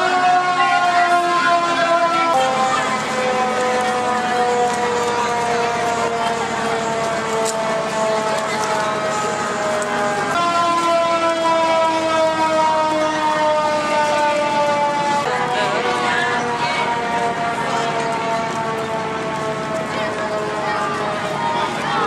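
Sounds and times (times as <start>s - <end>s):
crowd chatter: 0.0s - 22.0s
emergency vehicle siren: 0.0s - 22.0s.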